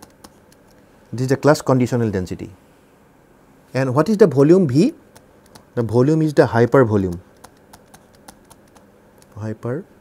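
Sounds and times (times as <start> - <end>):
stylus tapping on pen tablet: 0.0 - 0.8, 5.1 - 5.7, 7.0 - 9.4.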